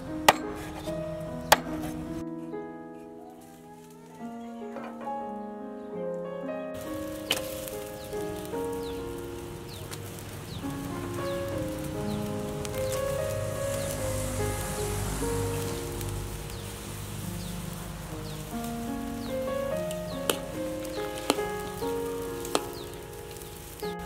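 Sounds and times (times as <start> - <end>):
slow music of held notes: 0.0 - 24.0.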